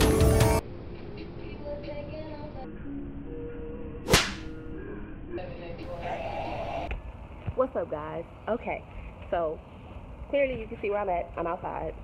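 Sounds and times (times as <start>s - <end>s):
faint background music: 0.0s - 12.0s
whip crack: 4.1s - 4.5s.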